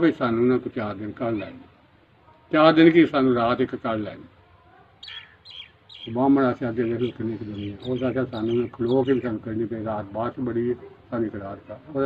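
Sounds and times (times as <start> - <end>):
small bird chirping: 4.8 - 9.6.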